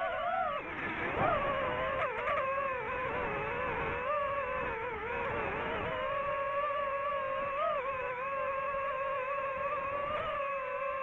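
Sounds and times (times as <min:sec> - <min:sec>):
drone propellers whining: 0:00.0 - 0:11.0.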